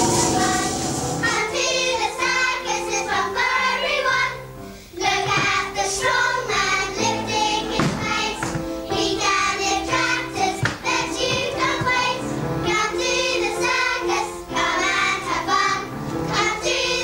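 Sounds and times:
held notes: 0.0 - 3.2
children singing: 0.0 - 17.0.

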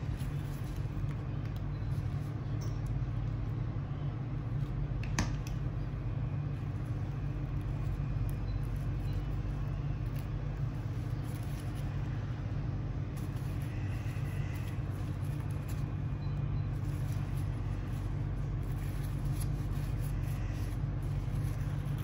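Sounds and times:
low background rumble: 0.0 - 22.0.

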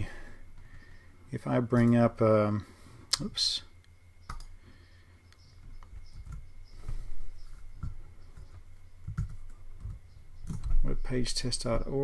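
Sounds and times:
low steady hum: 0.0 - 12.0
computer mouse clicks: 4.2 - 4.6.

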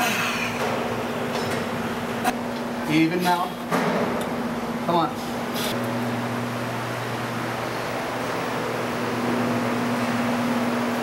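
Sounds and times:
steady low hum: 0.0 - 11.0
men talking: 2.8 - 3.6.

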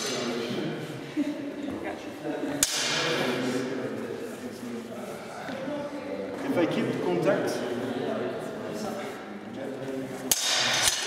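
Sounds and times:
swords clashing blade on blade: 10.3 - 11.0.

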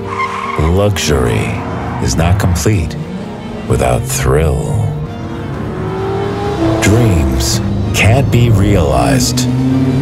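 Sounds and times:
background music: 0.0 - 10.0
car engine droning: 0.0 - 10.0.

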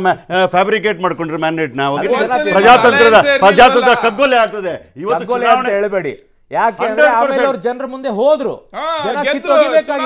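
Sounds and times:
men talking over one another: 0.8 - 10.0.

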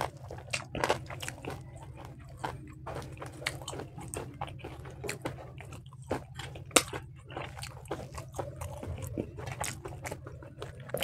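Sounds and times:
chewing and biting food: 0.0 - 11.0
steady low hum: 0.0 - 11.0.

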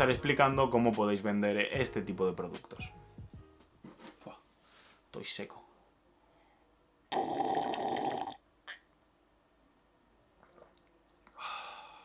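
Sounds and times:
man gulping juice: 7.1 - 8.9, 10.4 - 11.4.

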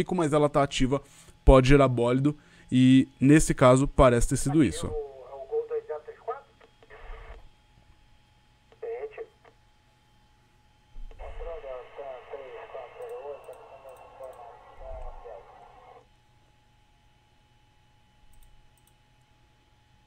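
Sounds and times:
radio transmission voices: 4.5 - 7.5, 8.7 - 9.6, 11.1 - 16.0.

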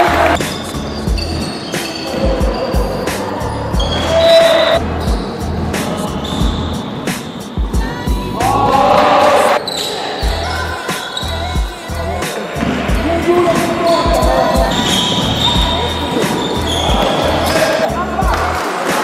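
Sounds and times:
music beat: 0.0 - 19.0
sneakers squeaking: 0.0 - 19.0
players calling out: 7.7 - 19.0.

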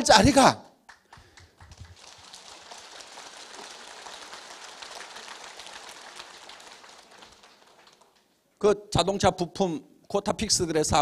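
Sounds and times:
audience applause: 0.9 - 8.2.

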